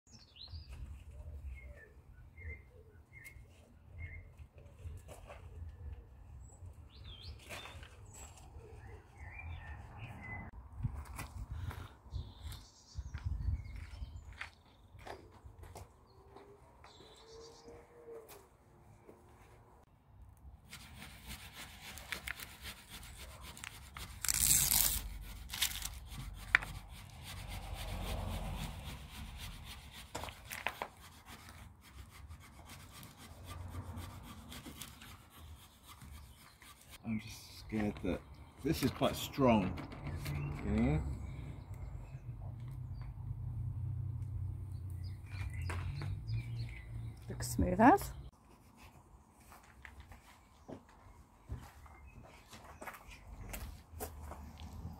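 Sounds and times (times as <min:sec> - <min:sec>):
birds chirping: 0:00.1 - 0:10.6, 0:11.6 - 0:19.0, 0:34.9 - 0:43.4, 0:44.3 - 0:48.3
squeegee scraping on tape: 0:20.6 - 0:37.0.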